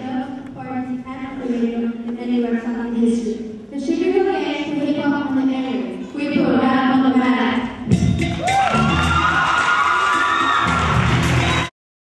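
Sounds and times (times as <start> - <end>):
music playing: 7.7 - 11.7
audience cheering and whooping: 8.2 - 11.7.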